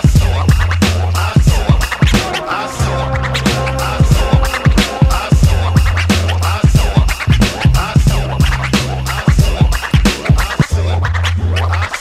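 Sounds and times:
held bass line: 0:00.0 - 0:11.9
turntable scratching: 0:00.0 - 0:12.0
punchy drum hits: 0:04.0 - 0:08.3.

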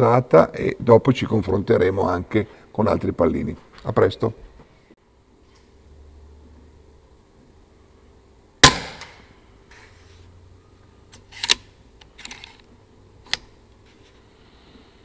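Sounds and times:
air rifle shot crack: 0:08.6 - 0:09.3.

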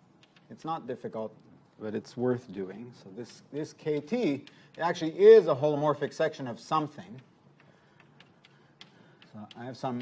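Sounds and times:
chalk tapping on blackboard: 0:03.2 - 0:05.5, 0:07.1 - 0:10.0.

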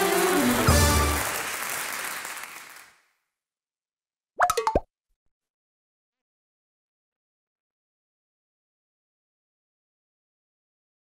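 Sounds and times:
theme music: 0:00.0 - 0:01.4.

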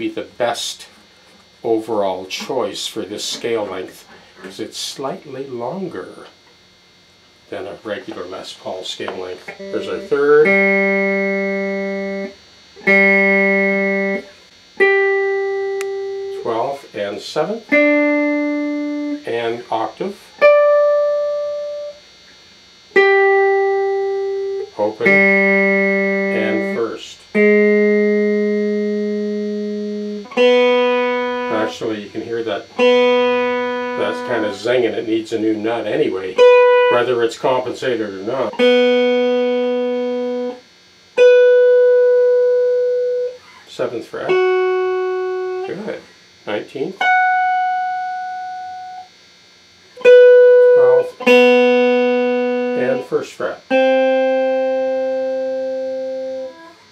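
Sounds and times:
electric guitar single picked notes: 0:05.2 - 0:56.8.

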